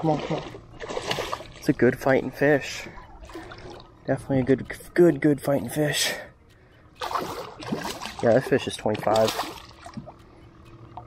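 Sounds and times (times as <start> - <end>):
fish splashing in water: 0.0 - 1.7, 7.0 - 10.3.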